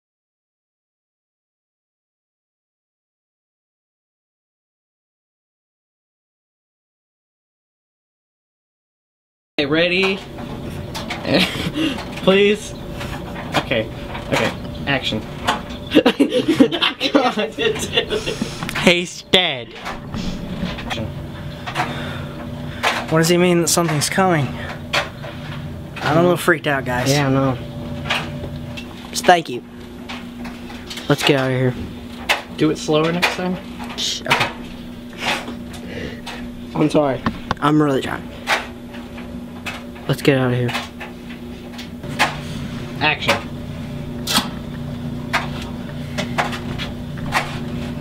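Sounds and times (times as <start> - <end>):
low machinery hum: 9.6 - 48.0.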